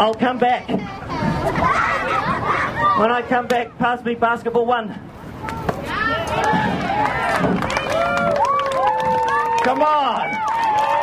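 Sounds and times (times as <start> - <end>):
crowd of children shouting: 5.8 - 11.0.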